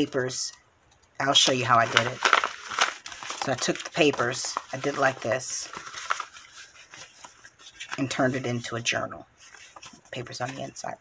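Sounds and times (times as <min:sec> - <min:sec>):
paper envelope rustling: 0:01.3 - 0:11.0.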